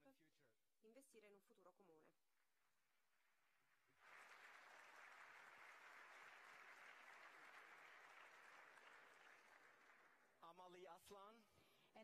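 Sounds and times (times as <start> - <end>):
audience applause: 3.9 - 10.4.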